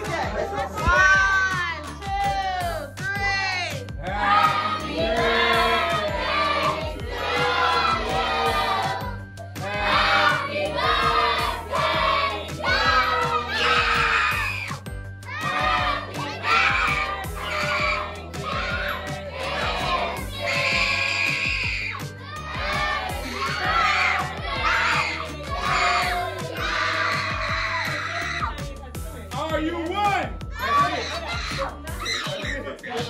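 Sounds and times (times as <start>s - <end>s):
people singing and shouting: 0.0s - 29.0s
music: 0.0s - 33.0s.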